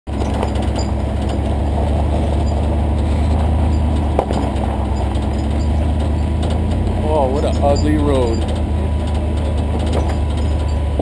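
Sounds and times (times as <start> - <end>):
body and gravel rattles: 0.1 - 11.0
truck engine droning: 0.1 - 11.0.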